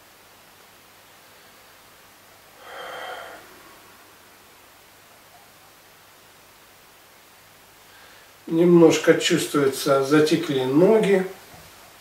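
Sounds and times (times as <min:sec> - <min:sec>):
man breathing through nose: 0:02.6 - 0:04.1.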